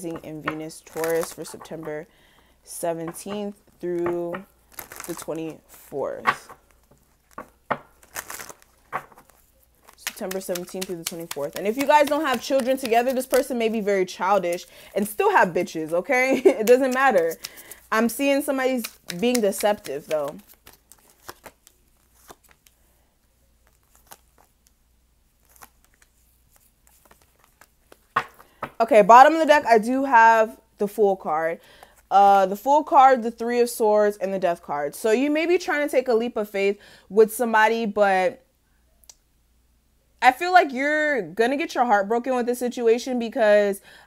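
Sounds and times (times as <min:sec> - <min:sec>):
cards shuffling: 0:00.1 - 0:02.0, 0:03.0 - 0:22.8, 0:23.6 - 0:24.8, 0:25.4 - 0:28.8
cards riffling: 0:04.0 - 0:05.3, 0:06.2 - 0:13.7, 0:16.6 - 0:22.8, 0:23.6 - 0:24.8, 0:25.4 - 0:28.7.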